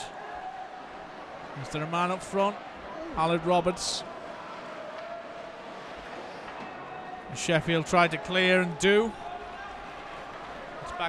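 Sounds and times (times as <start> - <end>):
ice rink noise: 0.1 - 11.0.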